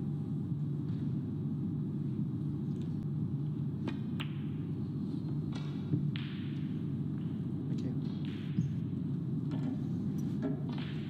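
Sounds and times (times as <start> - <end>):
steady low hum: 0.0 - 11.0
balls colliding click: 5.5 - 7.5, 8.1 - 8.9, 10.5 - 11.0.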